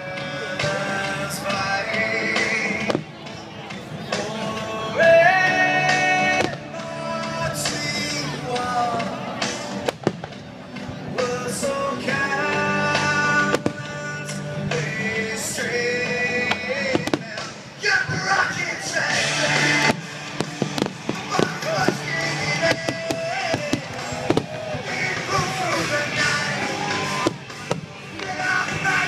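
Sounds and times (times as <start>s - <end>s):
music: 0.0s - 29.0s
fireworks bursting: 9.4s - 10.5s, 12.9s - 14.9s, 15.6s - 29.0s.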